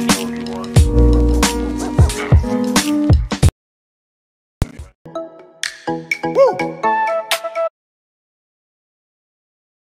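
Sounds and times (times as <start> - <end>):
electronic outro music: 0.8 - 2.8.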